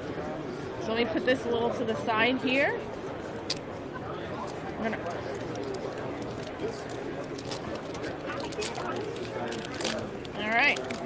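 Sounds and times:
foil wrapper crinkling and tearing: 5.0s - 11.0s.

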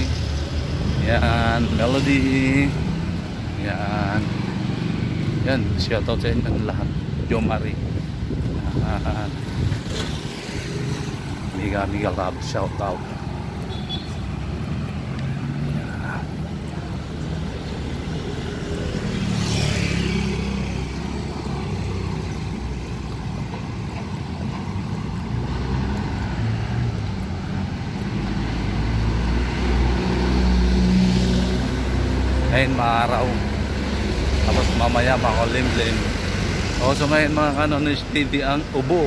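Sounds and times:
traffic engine rumble: 0.0s - 39.0s
vehicle passing close: 14.3s - 23.8s.

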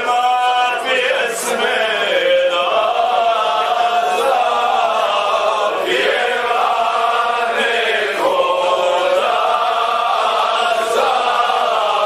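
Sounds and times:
men singing folk song: 0.0s - 12.0s.

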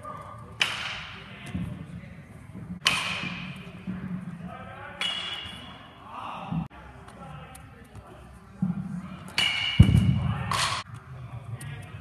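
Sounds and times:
baseball bat cracks echoing: 2.8s - 3.7s.

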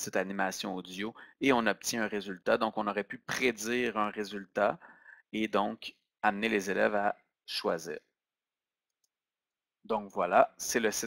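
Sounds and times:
man speaking: 0.0s - 4.8s, 5.4s - 8.0s, 9.9s - 11.0s.

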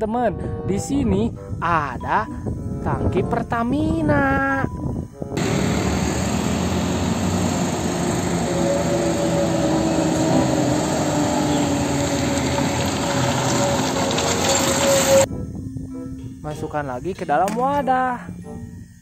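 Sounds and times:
heavy trucks driving on road: 5.4s - 15.3s.

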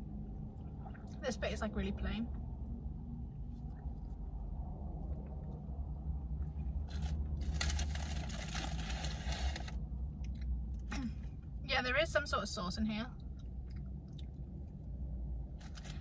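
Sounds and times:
steady low hum: 0.0s - 16.0s
crackly rustling noise: 6.6s - 9.8s
close-up chewing: 13.2s - 16.0s.

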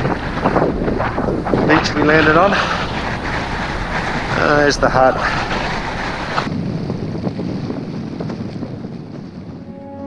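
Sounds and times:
wind buffeting microphone: 0.0s - 10.0s
music: 9.6s - 10.0s.

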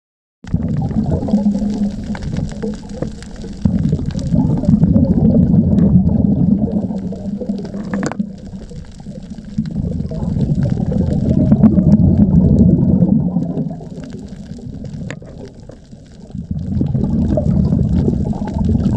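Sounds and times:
underwater bubbles rushing: 0.4s - 18.9s.

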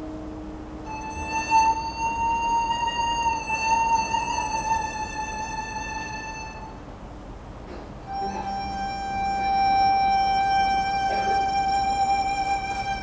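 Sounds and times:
traditional orchestra long notes: 8.1s - 13.0s.

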